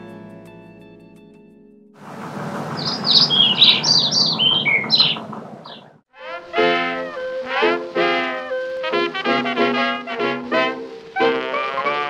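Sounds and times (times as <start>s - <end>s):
songbirds chirping: 2.0s - 6.0s
steady background noise: 2.0s - 6.0s.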